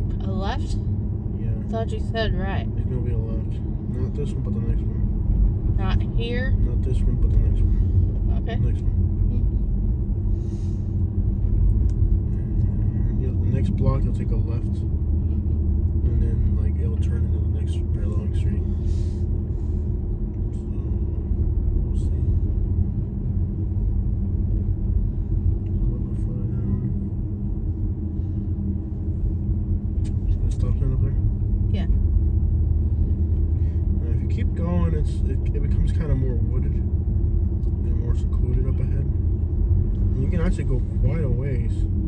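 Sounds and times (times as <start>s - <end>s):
car driving low rumble: 0.0s - 42.0s.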